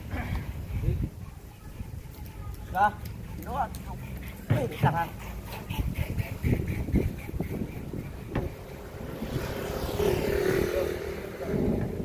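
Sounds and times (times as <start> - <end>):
vehicle engine passing: 7.8 - 12.0.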